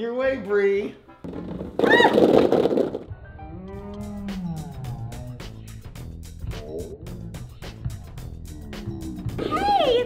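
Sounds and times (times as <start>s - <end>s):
background music: 0.0s - 10.0s
bouncy balls clattering: 1.2s - 3.1s.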